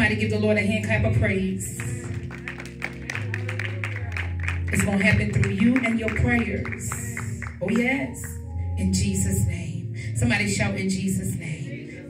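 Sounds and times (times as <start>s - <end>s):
people clapping: 1.7s - 8.4s.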